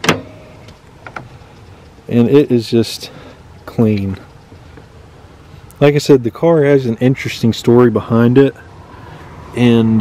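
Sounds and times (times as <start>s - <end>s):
car door latch click: 0.0s - 0.4s.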